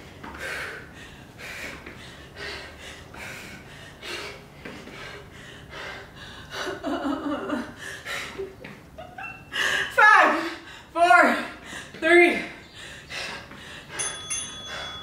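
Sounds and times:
woman breathing hard: 0.0 - 6.8, 7.6 - 8.6, 9.4 - 15.0
woman laughing breathily: 5.6 - 10.0.

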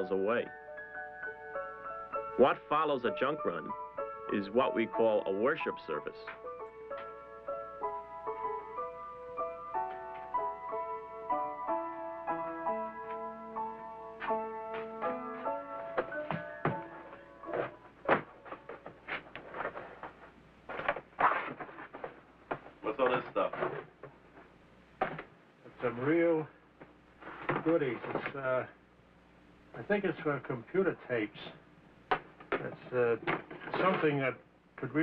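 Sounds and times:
piano music: 0.0 - 19.2.

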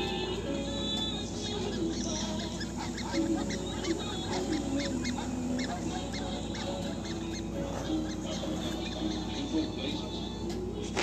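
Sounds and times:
squeaky honking cries: 0.0 - 10.4.

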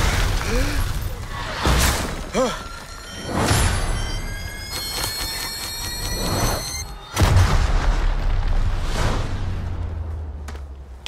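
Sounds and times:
high ringing tones: 2.5 - 7.2.

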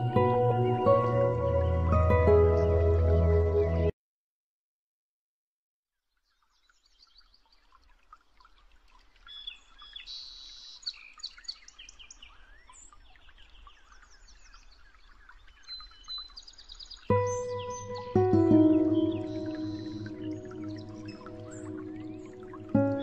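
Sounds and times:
held music chord with bass: 0.0 - 3.9
birds chirping and singing: 9.3 - 23.0.

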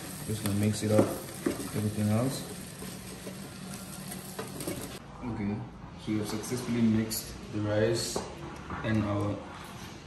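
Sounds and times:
faint sizzle: 0.0 - 5.0.

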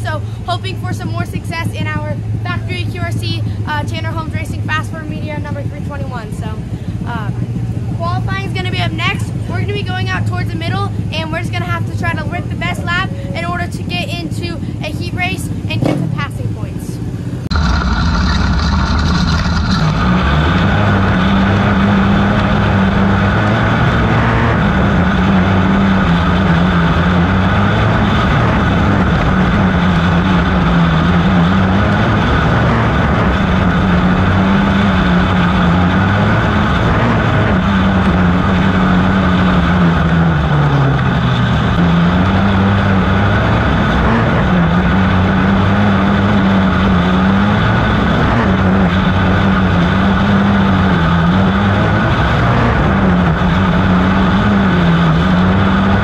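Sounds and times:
kart engine running hard: 0.0 - 56.0.

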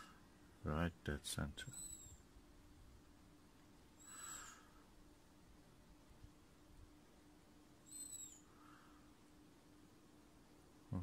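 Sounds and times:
low steady hum: 0.0 - 11.0
short high-pitched chirp: 1.7 - 2.1.

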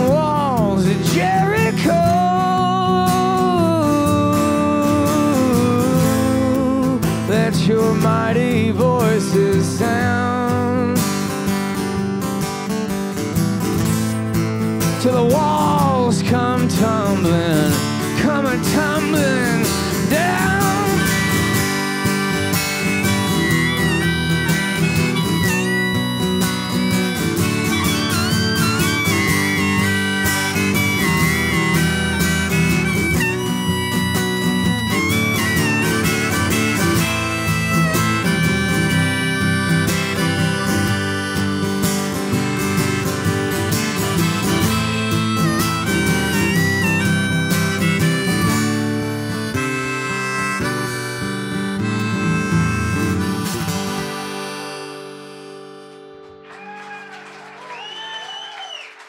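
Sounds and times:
strummed acoustic guitar: 0.0 - 56.4
harmonica with bending notes: 0.0 - 56.5.

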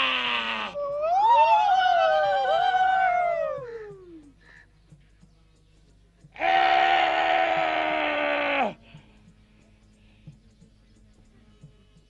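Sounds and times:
chorus of voices wailing: 0.0 - 4.3, 6.4 - 8.8.

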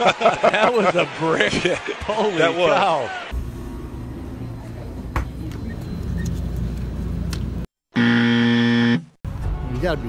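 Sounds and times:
store hum: 3.3 - 9.1
wrong answer buzzer: 8.0 - 9.0.

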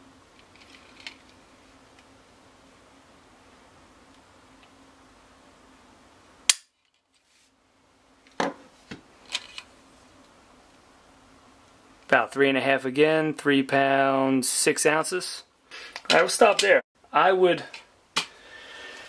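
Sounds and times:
sharp metallic pistol click: 6.5 - 6.7.

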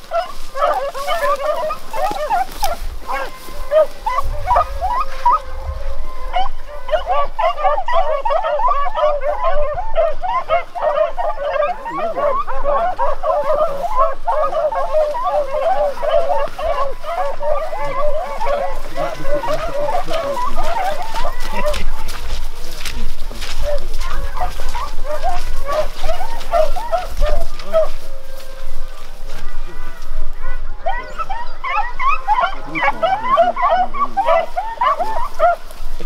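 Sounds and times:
pack of beagles baying: 0.0 - 36.0.

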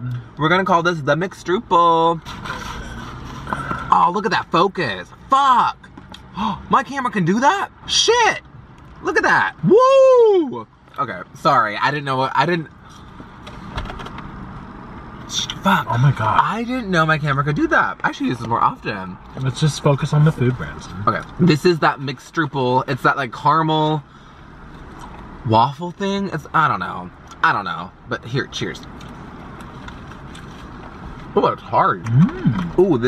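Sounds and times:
car interior background noise: 0.0 - 33.0.

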